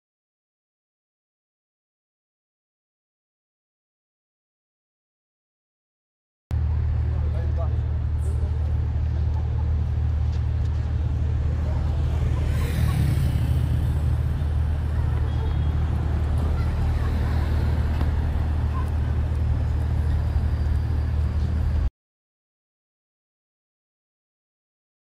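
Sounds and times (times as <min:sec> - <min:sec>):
road traffic rumble: 0:06.5 - 0:21.9.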